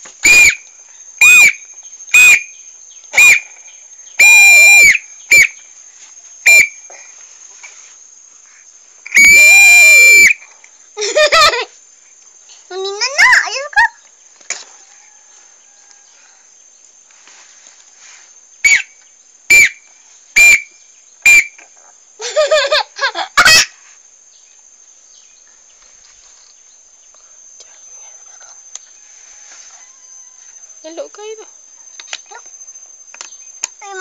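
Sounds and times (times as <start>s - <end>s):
toy whistle toots: 0.2s - 0.6s, 1.2s - 3.5s, 4.2s - 5.6s, 6.4s - 6.8s, 9.1s - 10.4s, 18.6s - 21.7s
child squealing: 9.1s - 10.4s, 23.4s - 23.8s.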